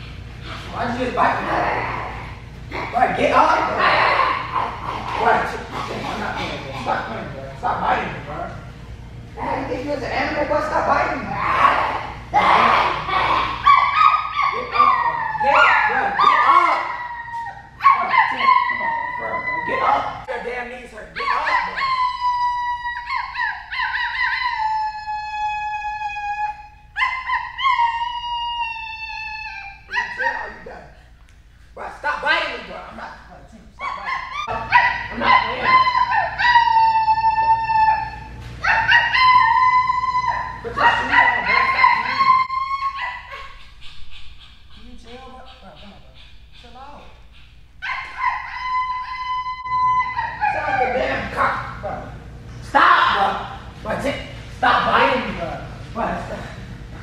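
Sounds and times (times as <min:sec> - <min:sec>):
woman howling like a dog: 0:11.3 - 0:20.0, 0:21.2 - 0:30.6, 0:33.8 - 0:43.6, 0:47.8 - 0:51.3.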